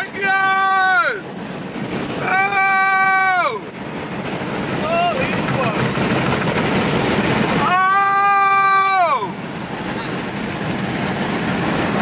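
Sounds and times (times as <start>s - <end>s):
wind and road noise in car: 0.0s - 12.0s.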